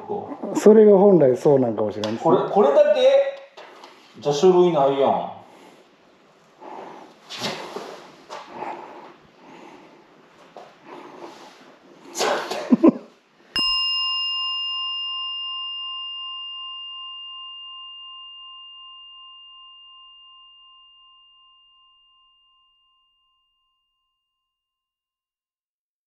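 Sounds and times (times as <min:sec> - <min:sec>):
small bowl bell ringing: 0:13.5 - 0:24.8.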